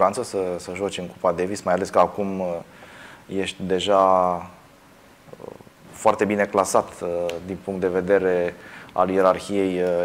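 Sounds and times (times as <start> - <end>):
man speaking: 0.0 - 2.7, 3.3 - 4.6, 5.3 - 10.0.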